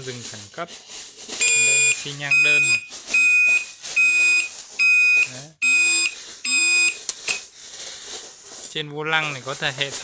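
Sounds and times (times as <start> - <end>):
high-pitched turn signal beeps: 1.4 - 7.4.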